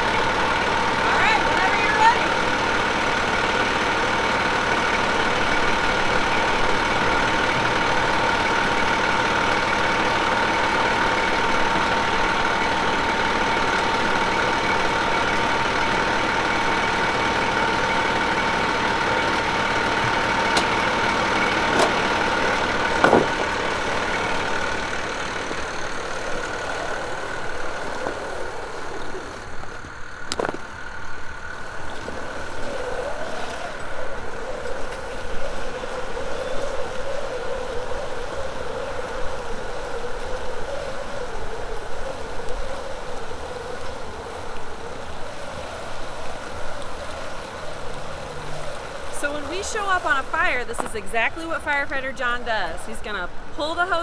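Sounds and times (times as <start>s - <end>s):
fire engine idling: 0.0s - 54.0s
steady whine: 0.0s - 54.0s.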